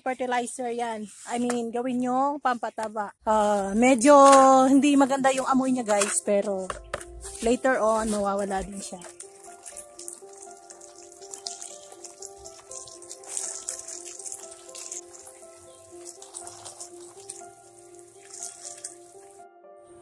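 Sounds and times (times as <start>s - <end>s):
water spraying from hose: 7.4s - 19.4s.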